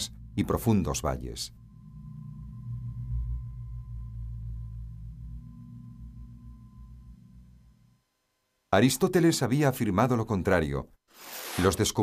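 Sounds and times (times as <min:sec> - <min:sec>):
low steady drone: 0:00.0 - 0:08.7.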